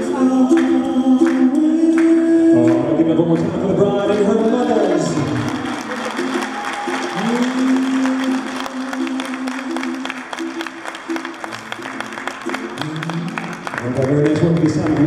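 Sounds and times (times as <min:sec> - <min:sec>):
slow song with singer: 0:00.0 - 0:05.7, 0:06.8 - 0:11.1
guests clapping: 0:00.5 - 0:15.0.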